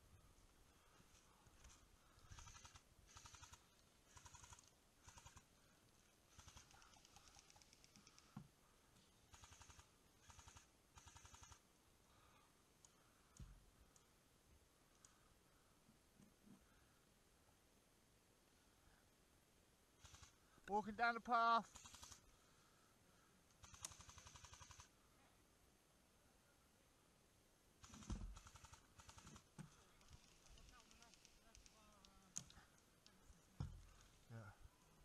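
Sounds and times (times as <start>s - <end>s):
airsoft gunfire bursts: 21.7s - 22.2s.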